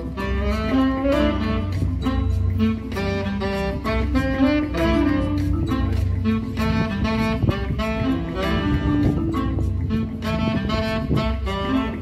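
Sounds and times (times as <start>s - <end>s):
low bass accompaniment: 0.0s - 12.0s
saxophone melody: 0.0s - 12.0s.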